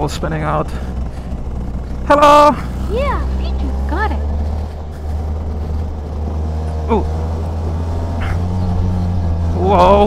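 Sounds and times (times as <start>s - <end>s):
go-kart engine droning: 0.0s - 10.0s.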